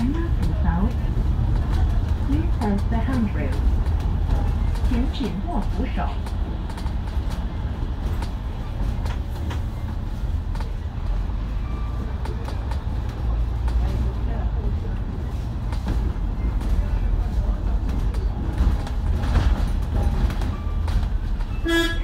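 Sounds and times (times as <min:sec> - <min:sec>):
bus engine and road rumble: 0:00.0 - 0:22.0.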